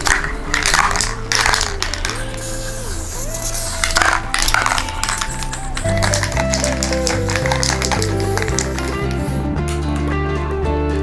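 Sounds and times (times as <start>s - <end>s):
spray paint can hissing: 0.0s - 9.6s
background music: 0.0s - 11.0s.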